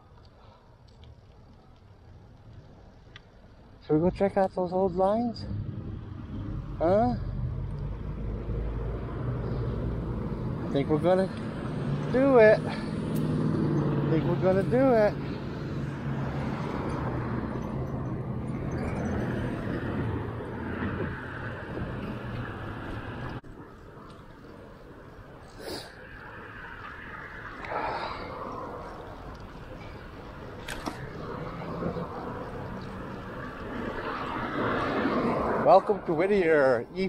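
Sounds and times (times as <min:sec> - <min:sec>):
street traffic noise: 0:00.0 - 0:37.0.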